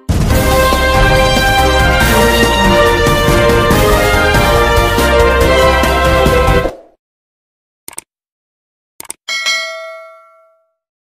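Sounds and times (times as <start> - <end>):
bell ding: 9.3 - 10.8.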